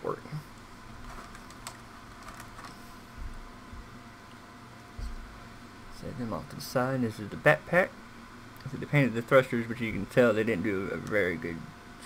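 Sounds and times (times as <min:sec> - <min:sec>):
plastic parts clicking and rustling: 0:01.0 - 0:02.8.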